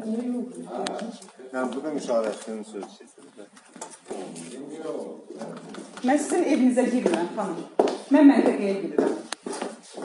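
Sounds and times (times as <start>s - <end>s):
muffled voices talking: 0.0s - 7.7s.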